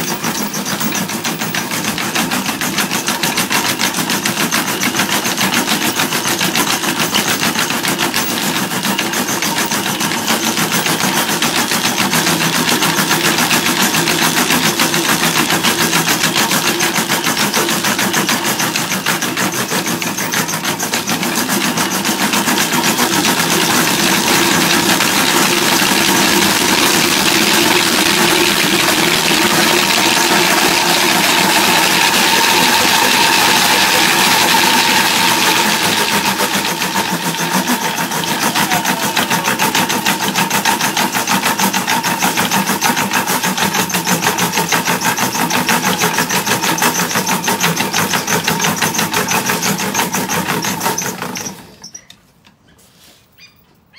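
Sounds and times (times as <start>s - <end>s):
wooden treadmill clattering: 0.0s - 52.2s.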